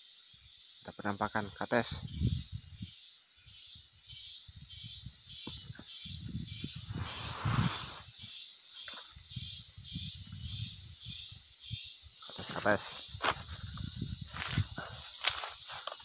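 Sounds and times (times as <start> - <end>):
insects buzzing: 0.0 - 16.0
rustle: 0.0 - 16.0.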